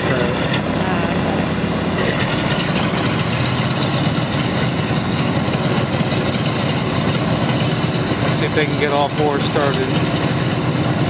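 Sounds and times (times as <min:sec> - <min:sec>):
radial piston engines idling: 0:00.0 - 0:11.0.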